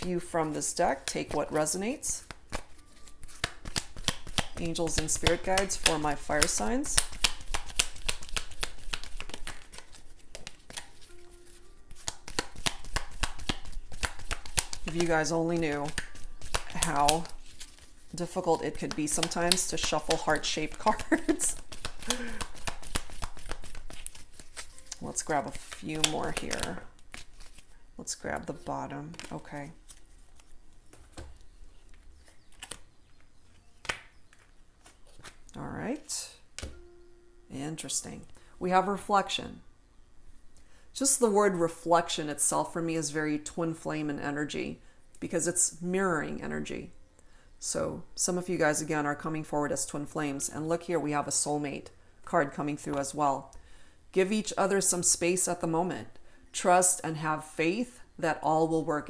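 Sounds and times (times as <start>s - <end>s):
cards being shuffled: 0.1s - 35.6s
cards tapping on cloth table: 3.3s - 9.8s.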